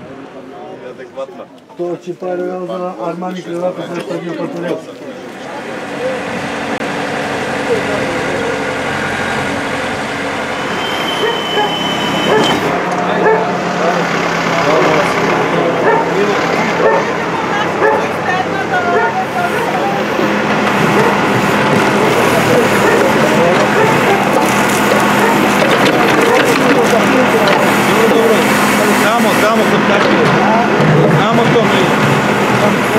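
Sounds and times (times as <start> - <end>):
diesel engine running: 5.2 - 32.9.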